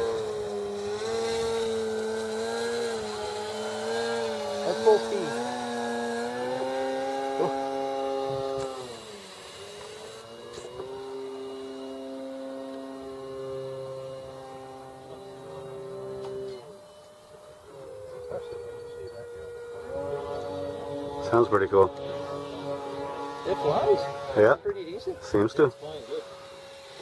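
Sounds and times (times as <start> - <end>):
model airplane motor whine: 0.0 - 27.0.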